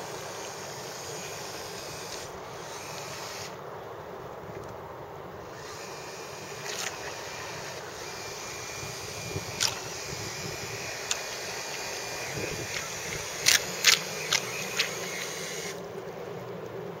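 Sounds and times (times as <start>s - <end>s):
electric motors whining: 0.0s - 3.6s, 5.4s - 15.9s
outdoor hiss: 0.0s - 17.0s
sharp clicks: 9.4s - 15.8s.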